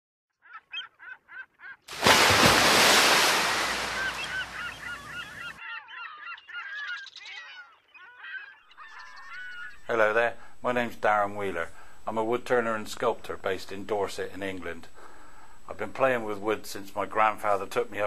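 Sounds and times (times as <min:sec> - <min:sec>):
honking bird calls: 0:03.4 - 0:09.9
chattering bird calls: 0:03.8 - 0:09.9.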